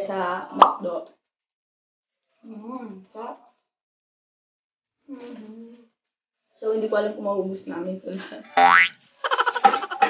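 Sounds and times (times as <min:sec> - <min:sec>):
upward-sliding boing: 0:08.6 - 0:08.9.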